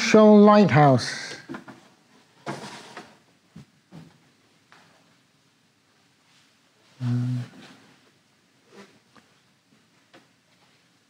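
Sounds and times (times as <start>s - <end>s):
mat board sliding rustle: 2.4s - 3.2s.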